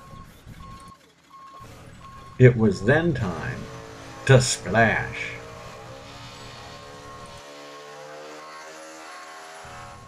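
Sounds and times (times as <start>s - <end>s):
truck backup alarm beeping: 0.0s - 7.4s.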